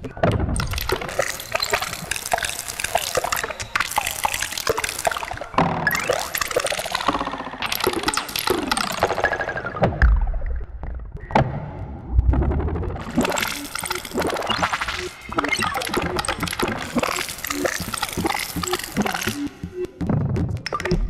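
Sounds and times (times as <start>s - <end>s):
electronic pops and clicks: 0.4s - 21.0s
deep low rumble: 11.7s - 13.1s.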